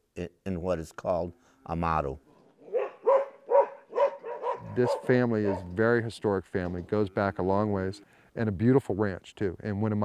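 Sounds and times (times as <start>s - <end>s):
dog barking: 2.7s - 5.8s.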